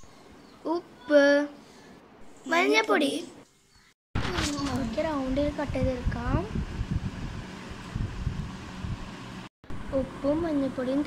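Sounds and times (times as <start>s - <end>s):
low microphone rumble: 4.2s - 10.5s.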